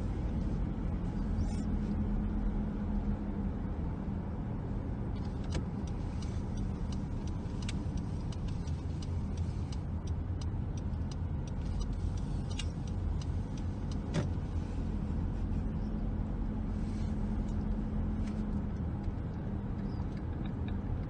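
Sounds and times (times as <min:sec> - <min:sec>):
car road and engine rumble: 0:00.0 - 0:21.0
light ticks and clicks: 0:05.2 - 0:14.7.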